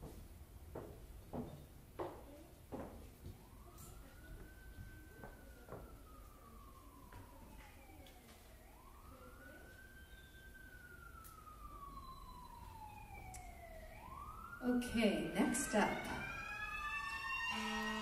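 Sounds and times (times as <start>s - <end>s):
emergency siren wailing: 3.2s - 18.0s.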